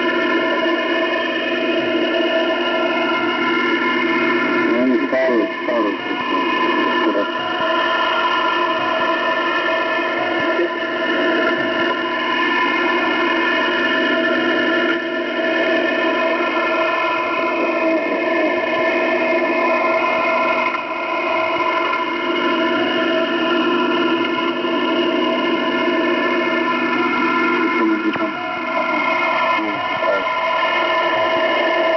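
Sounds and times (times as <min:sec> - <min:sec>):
cluster of held radio tones: 0:04.5 - 0:09.3, 0:09.9 - 0:13.2, 0:16.5 - 0:19.9, 0:27.5 - 0:30.5
radio hiss: 0:04.6 - 0:07.5, 0:10.2 - 0:11.8, 0:17.6 - 0:18.7, 0:27.6 - 0:28.5, 0:29.4 - 0:30.3.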